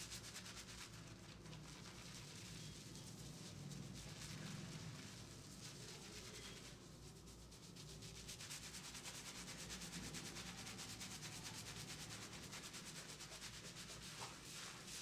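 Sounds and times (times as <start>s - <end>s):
fingers scrubbing shampoo lather: 0.0s - 15.0s.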